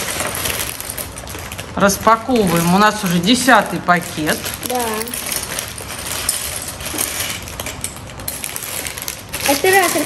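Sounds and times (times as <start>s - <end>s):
plastic bag crinkling: 0.0s - 10.0s
plastic pieces clicking and rattling: 0.0s - 10.0s.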